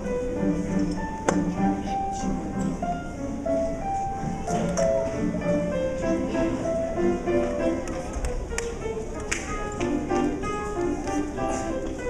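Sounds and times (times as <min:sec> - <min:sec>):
upright piano playing slow melody: 0:00.0 - 0:12.0.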